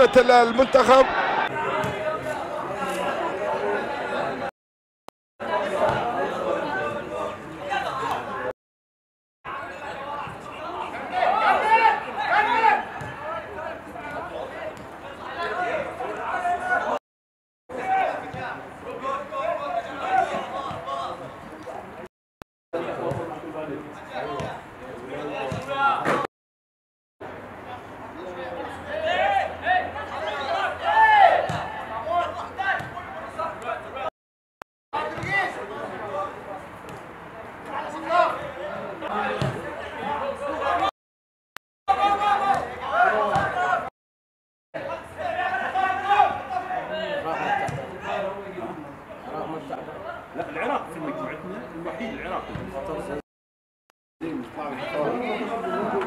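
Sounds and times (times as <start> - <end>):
players shouting calls: 0.0 - 4.4, 9.5 - 17.0, 28.8 - 34.1, 41.9 - 43.9, 44.8 - 48.4
voices talking and calling out: 27.3 - 34.1, 44.8 - 53.2.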